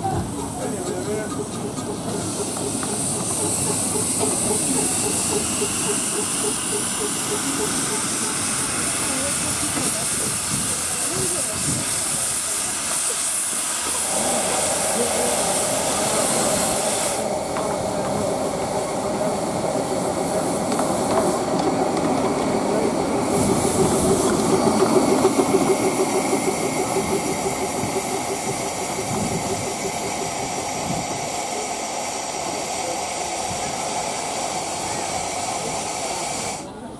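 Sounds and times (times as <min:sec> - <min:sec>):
locomotive working: 0:00.0 - 0:36.9
steam locomotive hissing steam: 0:00.0 - 0:36.9.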